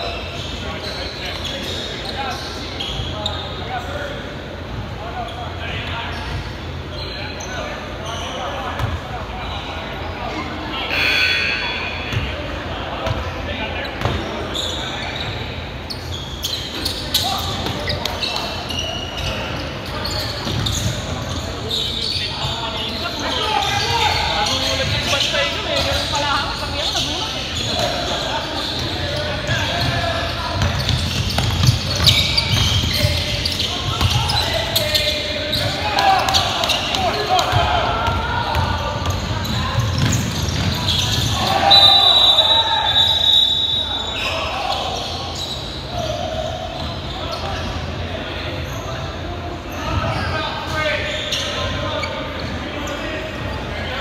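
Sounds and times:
players calling out: 6.9 - 54.0.

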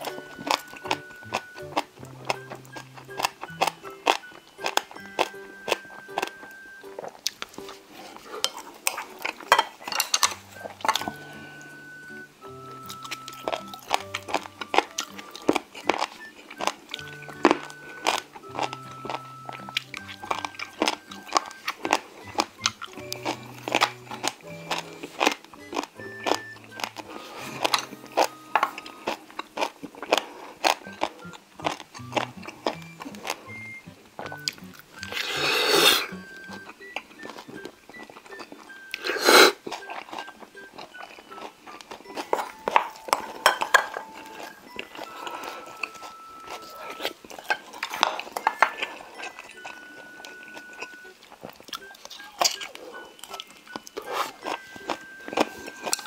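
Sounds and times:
crunching and chewing food: 0.0 - 56.0
light background music: 0.0 - 56.0
loud slurp: 35.1 - 36.1, 39.0 - 39.6.

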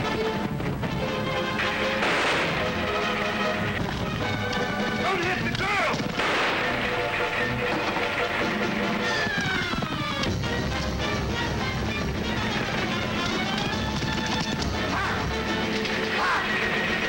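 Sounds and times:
orchestral chase music: 0.0 - 17.0
clattering action effects: 1.6 - 17.0
gunshots: 1.6 - 17.0.

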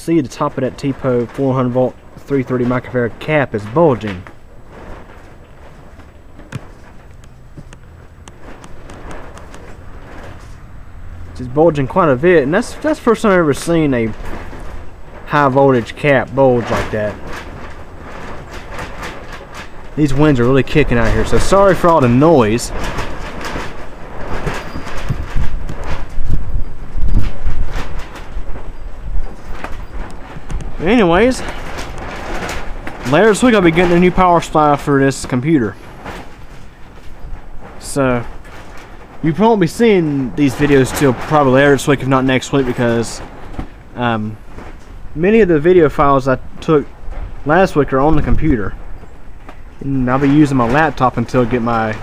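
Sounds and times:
sharp clicks and rattles: 0.0 - 52.0
wind buffeting microphone: 2.0 - 52.0.

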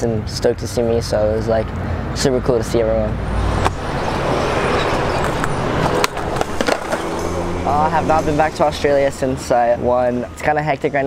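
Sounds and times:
skateboard wheels rolling on concrete: 3.0 - 9.6
sharp skateboard clack: 5.2 - 7.1.

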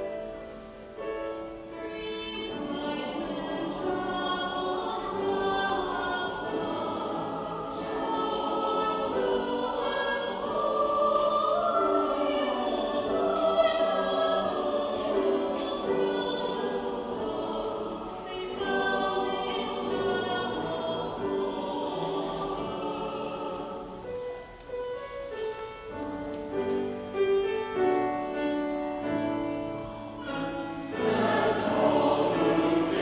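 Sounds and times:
mixed choir singing: 1.7 - 24.4, 30.0 - 33.0.

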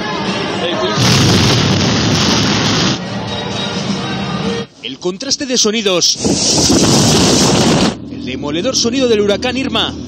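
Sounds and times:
storm surf surging: 1.0 - 3.1, 6.1 - 8.0
hurricane wind rushing: 6.0 - 8.0
wind buffeting microphone: 6.2 - 8.1.

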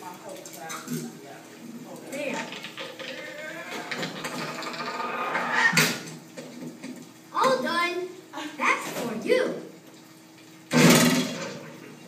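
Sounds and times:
indistinct voices: 1.6 - 5.8
clattering sound effects: 2.3 - 6.1.

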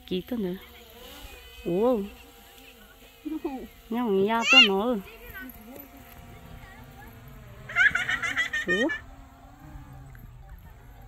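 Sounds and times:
faint steady buzz: 0.0 - 11.0
person calling: 4.2 - 5.0.

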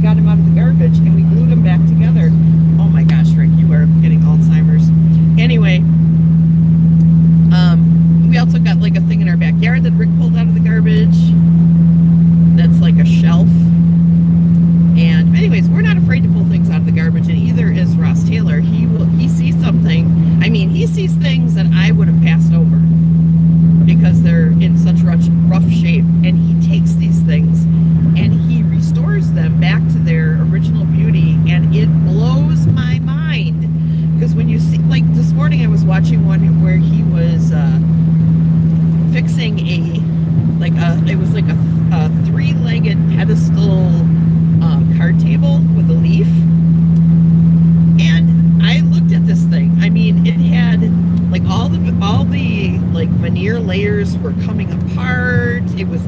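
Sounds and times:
woman talking: 0.0 - 5.9, 7.5 - 11.4, 12.5 - 13.8, 14.9 - 23.0, 23.8 - 38.0, 38.8 - 46.5, 48.0 - 56.0
car engine and road noise: 0.0 - 56.0.

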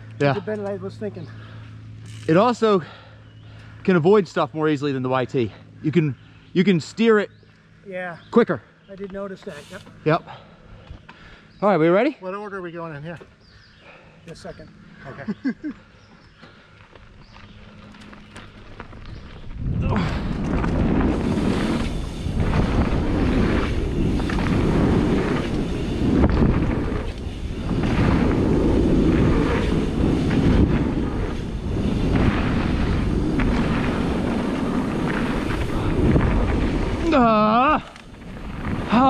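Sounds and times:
bike tyres rumbling over dirt: 16.2 - 39.0
wind buffeting microphone: 17.2 - 39.0.

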